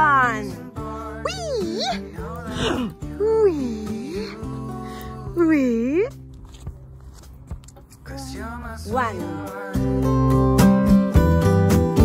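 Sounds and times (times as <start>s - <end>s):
woman calling out: 1.2s - 4.4s, 5.4s - 6.1s, 8.9s - 9.3s.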